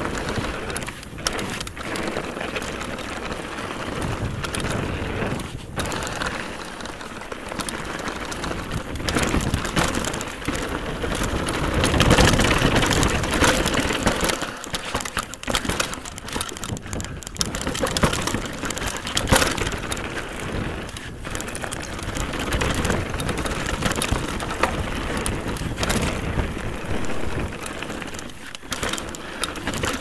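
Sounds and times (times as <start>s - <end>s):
bike rattling: 0.0s - 30.0s
bike tyres crunching over stones: 0.0s - 30.0s.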